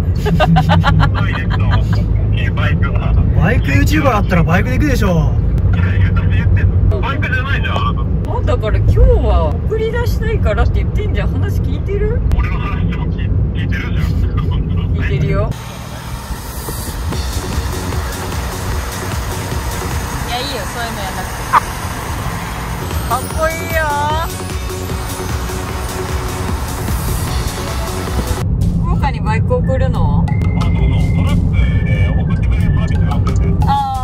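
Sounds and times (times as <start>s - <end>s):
low vehicle rumble: 0.0s - 34.0s.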